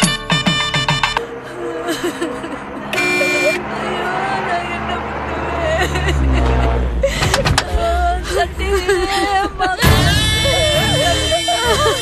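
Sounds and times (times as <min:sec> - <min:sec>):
car engine running: 0:00.0 - 0:12.0
car door opening clicks: 0:07.2 - 0:07.9.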